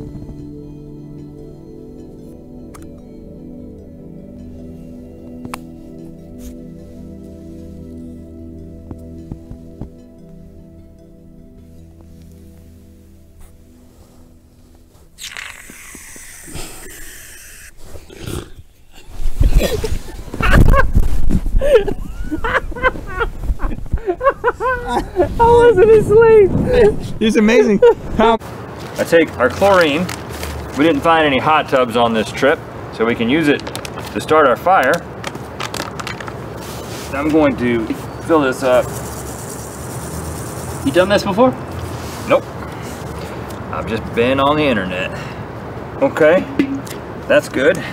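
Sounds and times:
rasping growling roar: 15.2 - 18.6.

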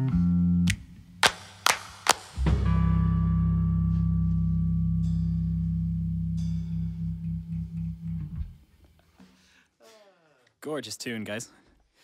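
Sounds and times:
electric guitar and bass chord: 2.4 - 8.6.

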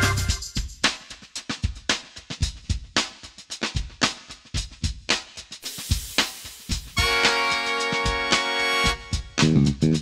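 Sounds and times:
drum kit playing groove: 0.0 - 10.0.

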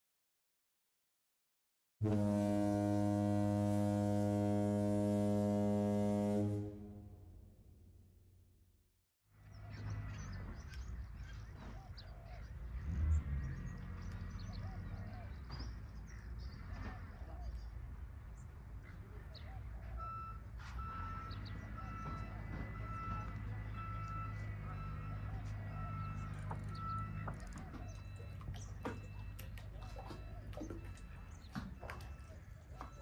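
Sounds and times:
ship's horn blast: 2.0 - 7.8
electronic warning beeps: 20.0 - 33.0.

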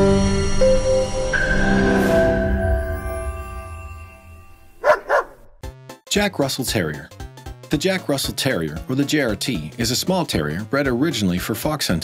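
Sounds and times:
dog barking: 4.8 - 5.6.

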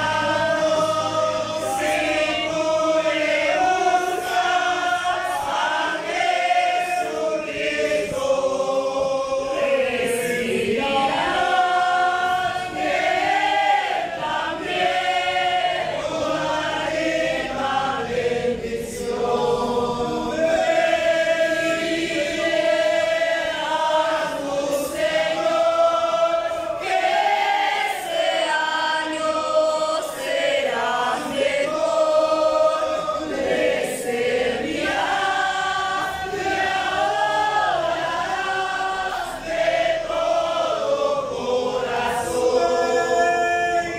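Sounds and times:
congregation singing: 0.0 - 43.9.

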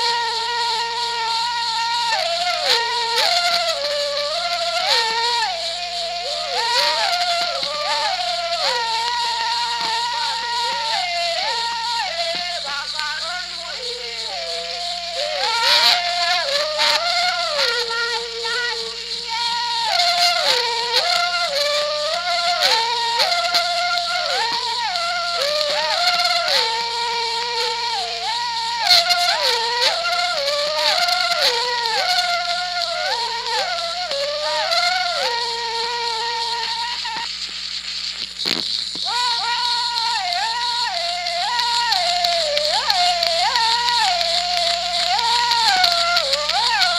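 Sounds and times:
two voices yodeling: 0.0 - 37.3, 39.0 - 46.9
recording hum and hiss: 0.0 - 46.9.

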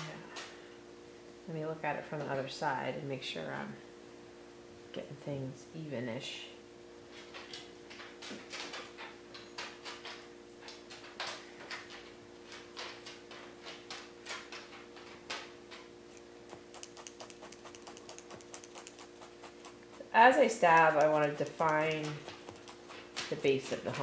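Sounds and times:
faint steady hum: 0.0 - 24.0
wool crunching and rustling: 16.1 - 24.0.

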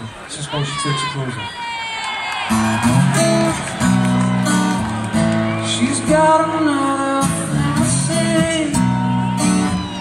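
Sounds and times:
outdoor crowd: 0.0 - 10.0
acoustic guitar strumming: 2.5 - 10.0.

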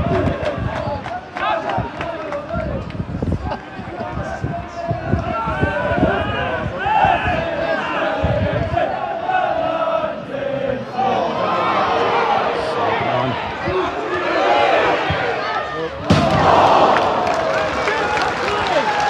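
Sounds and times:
football crowd shouting and singing: 0.0 - 19.0
crowd roar: 4.7 - 19.0.

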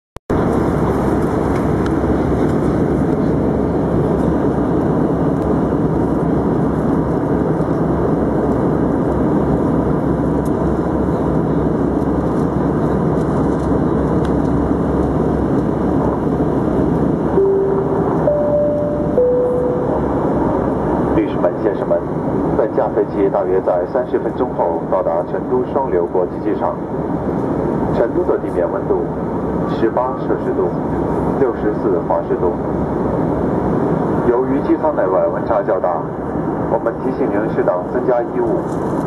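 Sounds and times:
airplane cabin engine rumble: 0.3 - 39.0
three-note chime: 17.4 - 20.2.

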